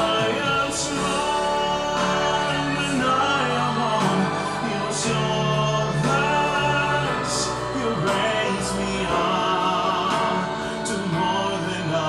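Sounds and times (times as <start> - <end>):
man singing long notes: 0.0 - 12.0
slow backing track: 0.0 - 12.0.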